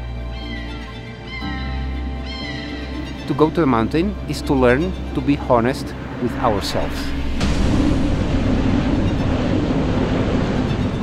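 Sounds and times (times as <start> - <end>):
strong blizzard wind blowing: 0.0 - 11.0.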